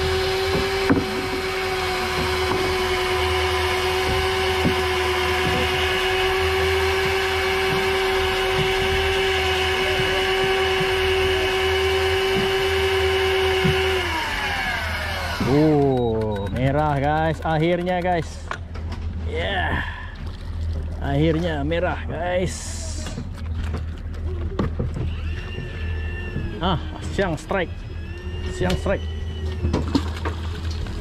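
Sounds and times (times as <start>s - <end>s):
electric fishing reel motor whine: 0.0s - 17.0s, 24.5s - 31.0s.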